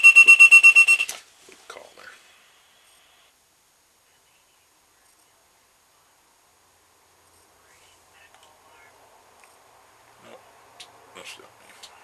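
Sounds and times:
rapid electronic alarm beeps: 0.0 - 1.1.

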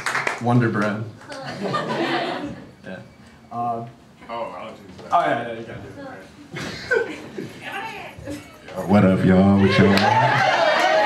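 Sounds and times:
men talking and laughing: 1.3 - 3.0, 6.4 - 10.7.

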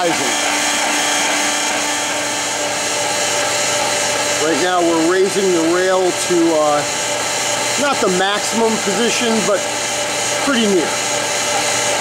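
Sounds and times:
faint hum changing pitch: 0.0 - 7.0
lathe motor whirring: 0.0 - 12.0.

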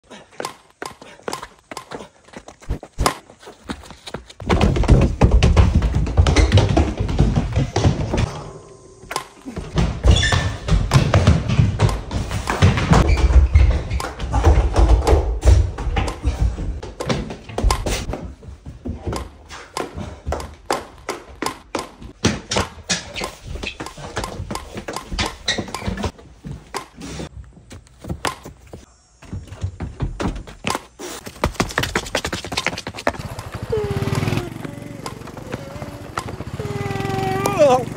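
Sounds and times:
running footsteps on stairs: 0.2 - 8.3, 9.5 - 37.2
sharp taps and thumps: 0.4 - 3.2, 4.1 - 18.2, 18.9 - 27.0, 29.6 - 33.6, 34.5 - 36.6.

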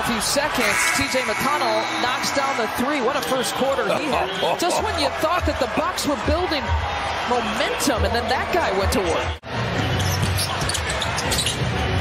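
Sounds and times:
crowd hum in a hall: 0.0 - 12.0
shoe squeaks and clicks: 0.6 - 2.7, 9.8 - 12.0.

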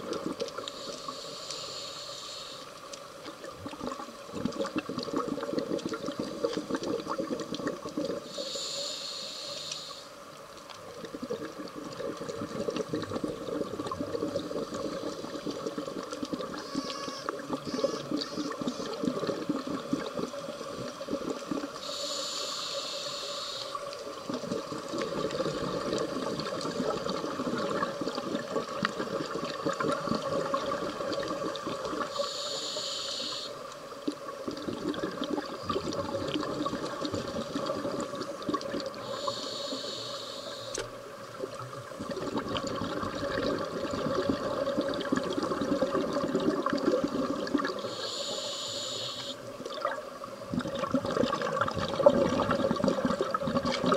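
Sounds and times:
scuba regulator hissing inhalations: 0.7 - 2.8, 8.2 - 10.2, 21.8 - 23.9, 32.0 - 33.6, 39.0 - 40.9, 47.7 - 49.4
exhaled bubbles rushing: 3.4 - 8.3, 11.0 - 16.6, 17.3 - 21.8, 24.2 - 32.2, 34.1 - 39.1, 41.5 - 47.9, 49.6 - 53.9
steady hum: 18.7 - 27.6, 39.0 - 41.2.

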